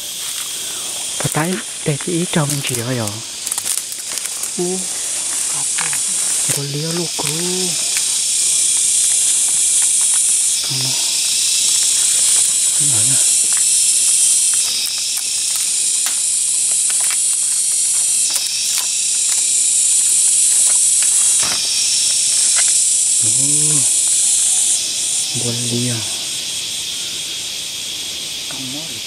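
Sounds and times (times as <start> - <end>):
cicadas droning: 0.0 - 29.0
dry branches snapping underfoot: 0.2 - 22.8.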